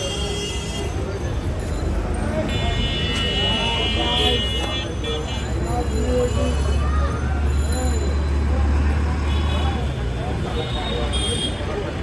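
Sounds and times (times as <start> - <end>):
chatter of many voices: 0.0 - 12.0
low traffic rumble: 0.0 - 12.0.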